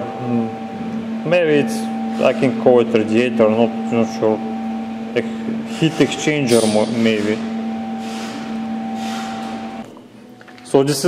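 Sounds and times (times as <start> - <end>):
machine hum with two tones: 0.0 - 11.0.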